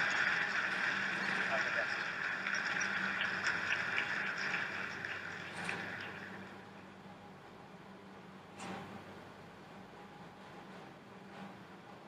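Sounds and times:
audience applauding: 0:00.0 - 0:06.5.

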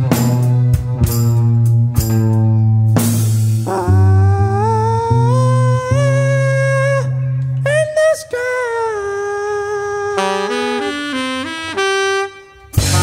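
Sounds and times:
steady bass: 0:00.0 - 0:11.7, 0:12.6 - 0:13.0
sliding lead guitar notes: 0:00.0 - 0:13.0
drum hits: 0:12.8 - 0:13.0.

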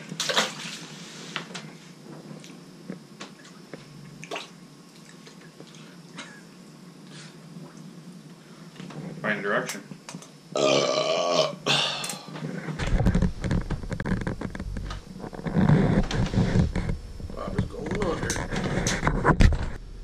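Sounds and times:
person belching loudly: 0:10.5 - 0:12.3.

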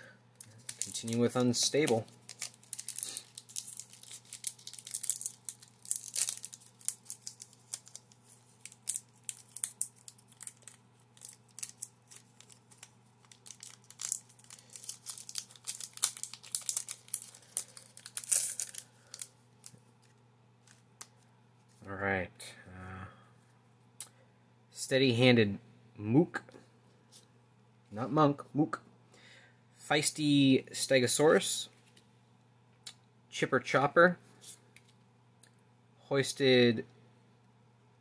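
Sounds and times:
foil wrapper crinkling and tearing: 0:00.4 - 0:19.8.

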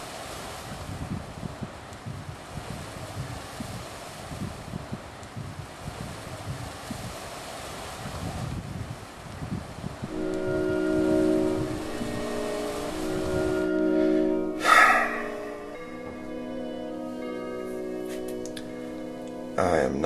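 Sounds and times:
sustained chord of tones: 0:10.1 - 0:20.0.

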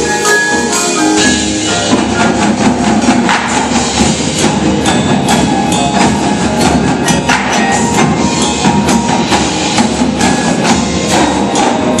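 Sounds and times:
mallet percussion: 0:00.0 - 0:12.0
snare tenor and bass drums: 0:00.0 - 0:12.0.

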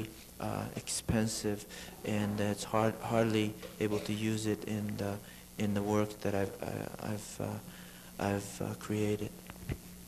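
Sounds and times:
person talking: 0:00.0 - 0:09.4.

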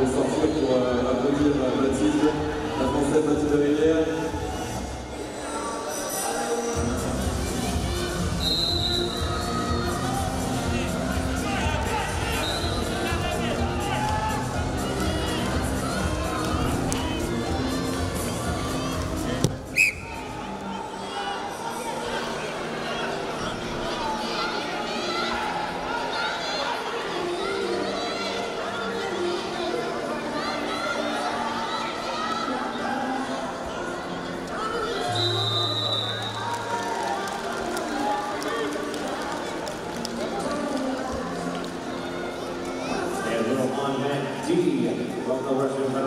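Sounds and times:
arena crowd noise: 0:00.0 - 0:46.0
music: 0:00.0 - 0:46.0
referee's whistle blast: 0:08.4 - 0:09.2, 0:12.4 - 0:12.8, 0:19.7 - 0:20.1, 0:35.1 - 0:36.4.

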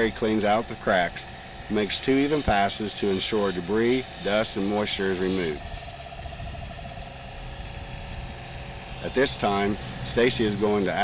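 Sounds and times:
air lance hissing: 0:00.0 - 0:11.0
low steady hum: 0:00.0 - 0:11.0.

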